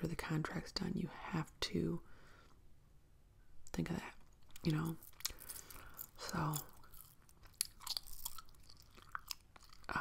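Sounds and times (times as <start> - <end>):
gum chewing: 4.3 - 10.0.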